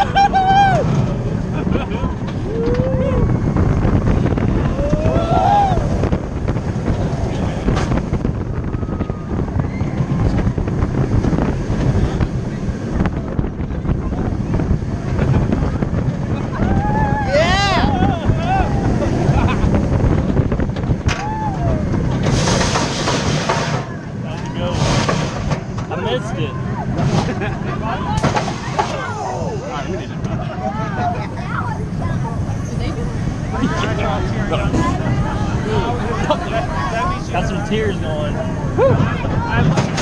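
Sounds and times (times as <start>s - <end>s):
riders screaming: 0.0s - 1.0s, 4.6s - 6.0s, 16.5s - 19.1s, 21.2s - 21.9s
roller coaster train rumble: 0.0s - 40.0s
wind buffeting camera: 0.0s - 40.0s.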